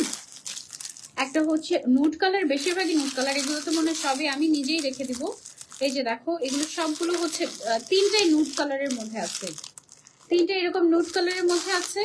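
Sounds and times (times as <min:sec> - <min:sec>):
plastic packets crinkling: 0:00.0 - 0:12.0
woman speaking: 0:01.2 - 0:09.7, 0:10.3 - 0:12.0.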